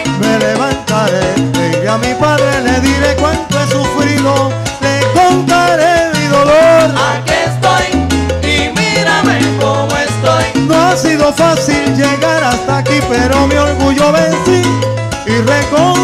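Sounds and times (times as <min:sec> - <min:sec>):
live salsa band playing: 0:00.0 - 0:16.0.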